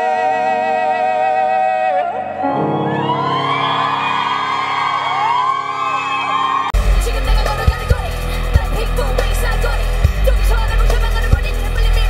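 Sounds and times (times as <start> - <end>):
crowd screaming and cheering: 2.2 - 8.9
live pop music with heavy bass: 6.8 - 12.0.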